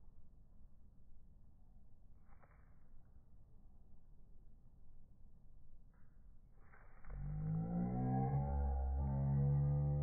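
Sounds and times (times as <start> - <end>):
low droning tone: 6.7 - 10.0.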